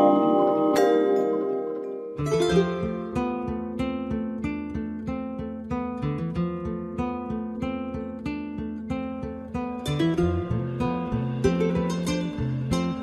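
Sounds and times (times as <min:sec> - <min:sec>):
acoustic guitar strumming: 0:00.0 - 0:13.0.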